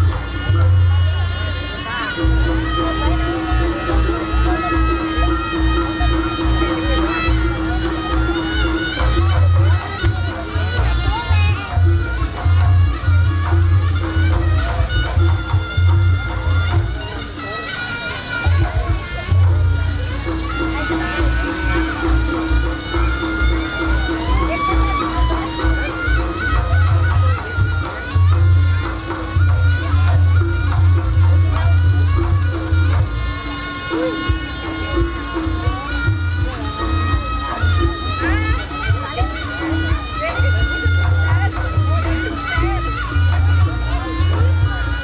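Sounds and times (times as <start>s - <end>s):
beating drums: 0.0s - 45.0s
shawm playing wavering melody: 0.0s - 45.0s.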